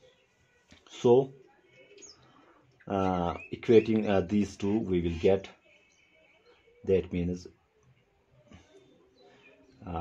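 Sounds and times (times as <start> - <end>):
man speaking: 0.9 - 1.4, 2.9 - 5.5, 6.8 - 7.5.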